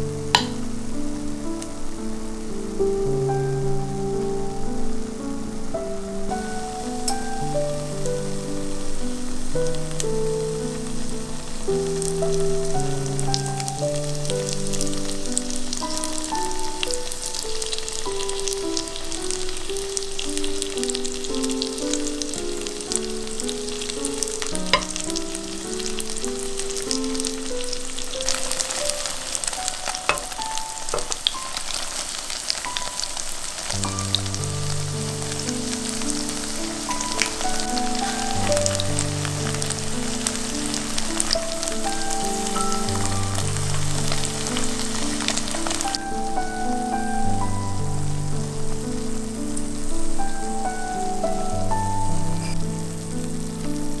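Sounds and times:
soft background melody: 0:00.0 - 0:54.0
tofu sizzling in oil: 0:06.3 - 0:48.8.

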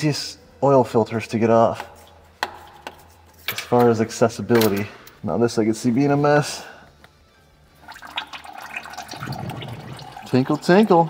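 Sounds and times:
oil trickling into plastic pan: 0:07.8 - 0:11.0.

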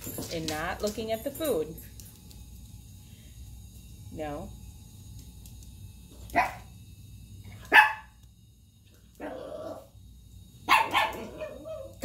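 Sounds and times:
dog barking: 0:06.3 - 0:06.7, 0:07.7 - 0:08.1, 0:10.6 - 0:12.0.

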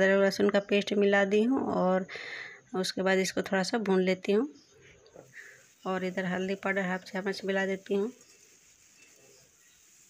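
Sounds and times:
spatula stirring vegetables: 0:05.1 - 0:10.0.

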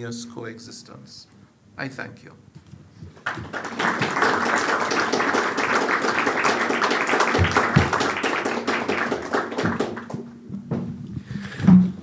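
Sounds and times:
audience applauding: 0:03.1 - 0:10.4.

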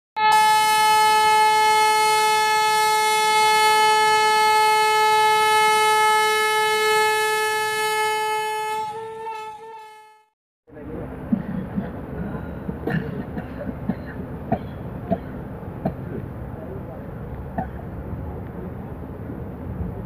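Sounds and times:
train horn: 0:00.2 - 0:10.4.

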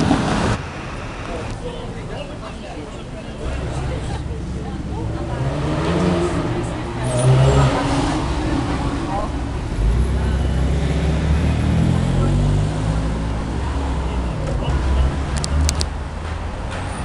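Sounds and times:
car engine and exhaust pulling away: 0:00.0 - 0:17.0.

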